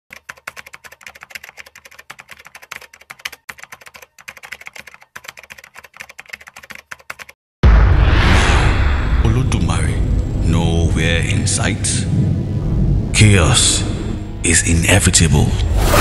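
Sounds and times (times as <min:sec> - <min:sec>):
loud deep boom: 0:07.6 - 0:14.4.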